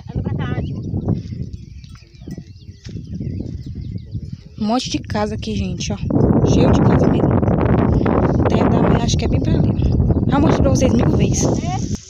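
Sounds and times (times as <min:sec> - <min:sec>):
small birds chirping: 0:00.0 - 0:12.0
steady low rumble: 0:00.0 - 0:12.0.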